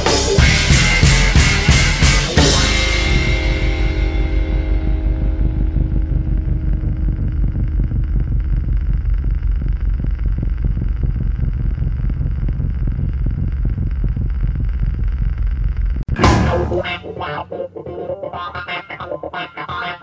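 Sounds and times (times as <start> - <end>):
low fluttering rumble: 3.1 - 16.1.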